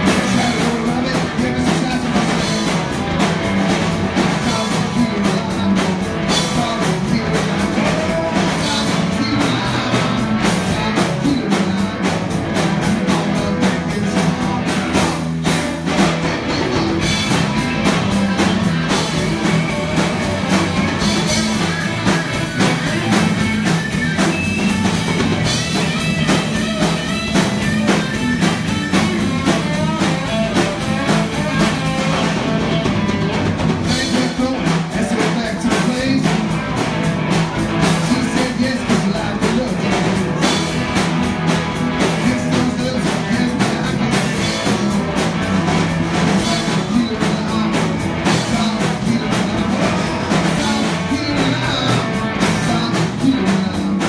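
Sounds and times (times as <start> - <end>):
drum kit beating: 0.0 - 54.0
electric guitar: 0.0 - 54.0
person singing: 0.0 - 54.0.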